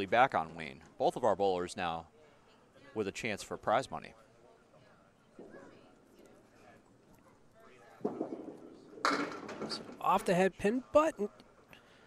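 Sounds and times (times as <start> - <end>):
bowling ball rolling on wooden lane: 7.9 - 10.0
bowling pins clattering: 8.0 - 10.3.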